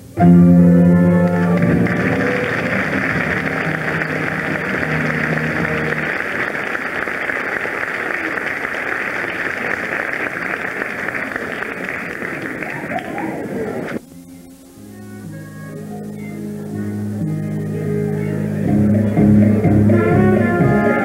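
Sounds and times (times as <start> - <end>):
orchestra holding low chord: 0.0 - 6.8
audience applauding: 1.1 - 14.0.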